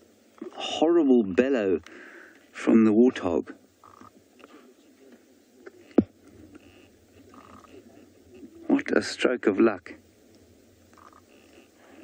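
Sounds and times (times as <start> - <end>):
faint low animal sounds: 3.8 - 12.0.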